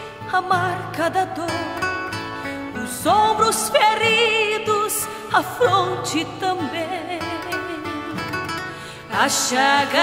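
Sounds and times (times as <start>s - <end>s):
person singing: 2.8s - 8.4s, 9.1s - 10.0s.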